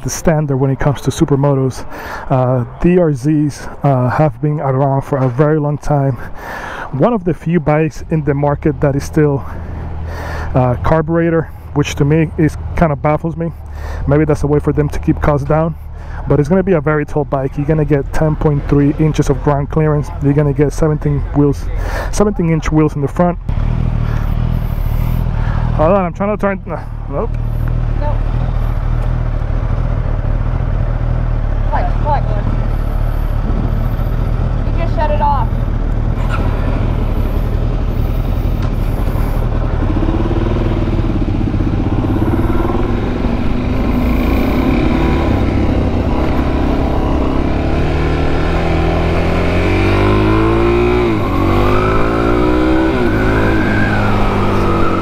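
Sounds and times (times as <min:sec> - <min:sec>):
motorcycle engine revving: 0:23.4 - 0:55.0.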